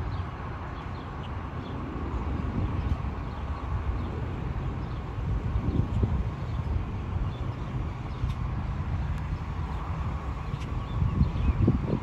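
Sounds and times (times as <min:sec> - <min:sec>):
distant jet engines rumbling: 0:00.0 - 0:12.0.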